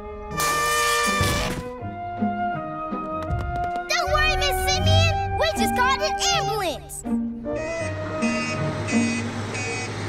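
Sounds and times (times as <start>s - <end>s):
back-up alarm beeping: 7.6s - 10.0s.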